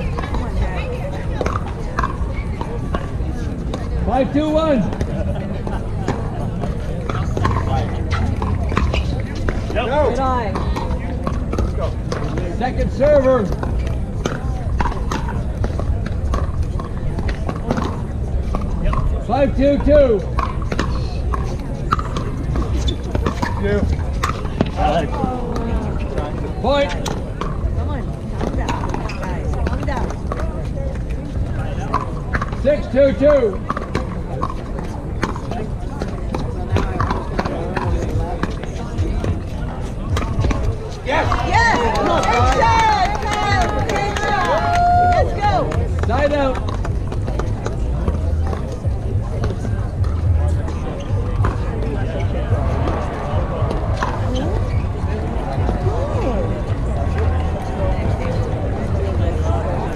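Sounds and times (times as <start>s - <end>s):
indistinct voices: 0.0s - 59.9s.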